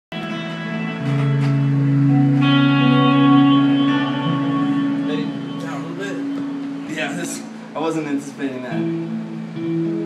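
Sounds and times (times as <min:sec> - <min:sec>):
acoustic guitar: 0:00.1 - 0:07.7.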